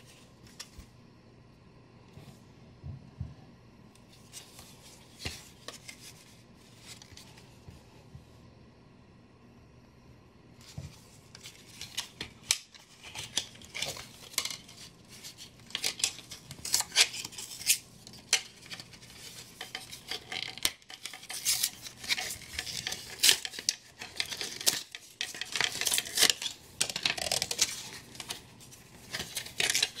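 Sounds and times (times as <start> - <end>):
cardboard packaging tearing: 18.5 - 28.4.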